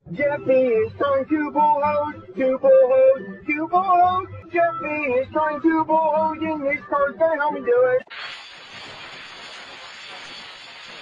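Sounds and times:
steady hiss: 0:08.1 - 0:11.0.

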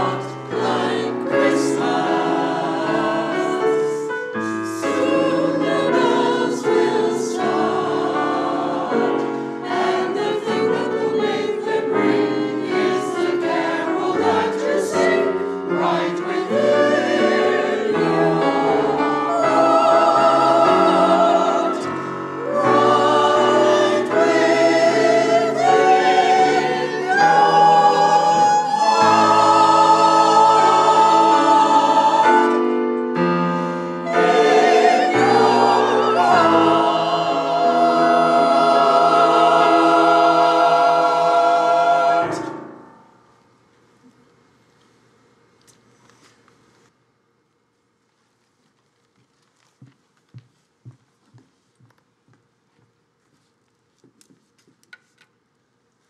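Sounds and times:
mixed choir singing: 0:00.0 - 0:43.2.

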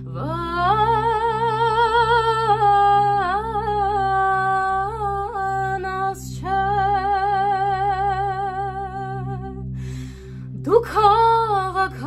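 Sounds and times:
low steady drone: 0:00.0 - 0:12.0
woman singing with vibrato: 0:00.1 - 0:09.6, 0:10.6 - 0:12.0.

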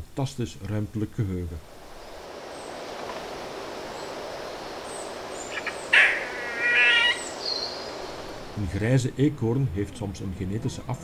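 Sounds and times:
insect-like hum: 0:01.6 - 0:08.7
buzzy animal call: 0:05.3 - 0:08.5.

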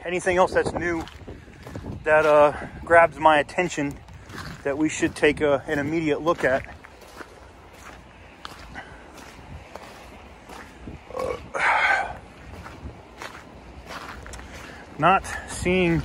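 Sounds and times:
footsteps on wet gravel: 0:00.0 - 0:16.0.

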